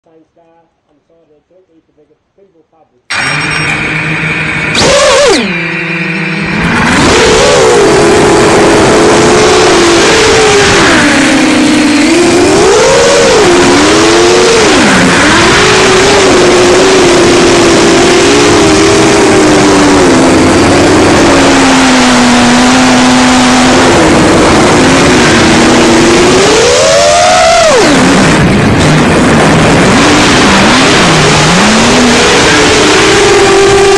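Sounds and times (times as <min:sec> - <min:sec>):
quadcopter motors whining: 0:03.1 - 0:33.9.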